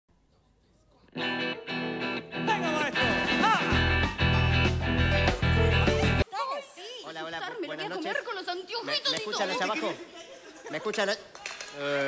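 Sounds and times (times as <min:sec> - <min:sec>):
band music with electric guitar: 0:01.2 - 0:06.2
deep bass: 0:03.1 - 0:06.2.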